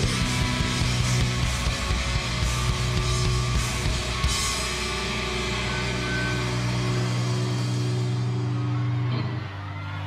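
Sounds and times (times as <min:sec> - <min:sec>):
bass guitar: 0:00.0 - 0:10.0
distorted electric guitars: 0:00.0 - 0:10.0.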